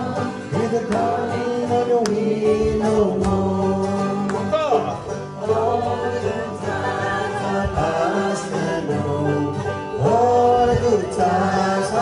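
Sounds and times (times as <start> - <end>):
acoustic guitars: 0.0 - 12.0
banjo: 0.0 - 12.0
voices singing together: 0.0 - 12.0.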